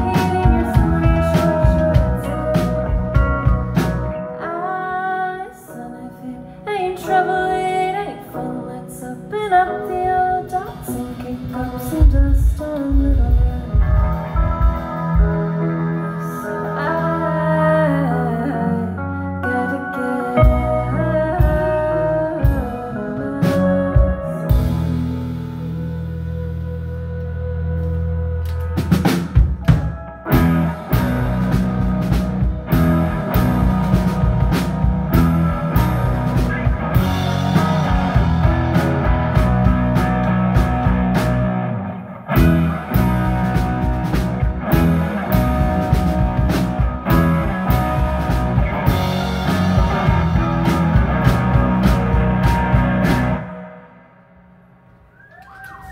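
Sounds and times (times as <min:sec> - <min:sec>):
drum kit: 0:00.0 - 0:04.4, 0:09.8 - 0:17.4, 0:20.4 - 0:27.2, 0:27.8 - 0:53.8
live rock band playing: 0:00.0 - 0:54.4.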